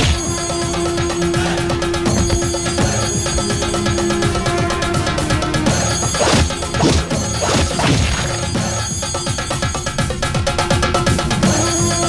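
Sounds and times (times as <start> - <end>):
film score music: 0.0 - 12.0
heavy punch impacts: 6.2 - 8.4.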